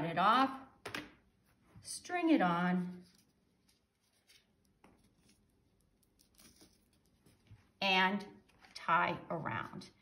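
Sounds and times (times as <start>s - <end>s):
faint rustles and ticks of cord: 2.9s - 7.8s.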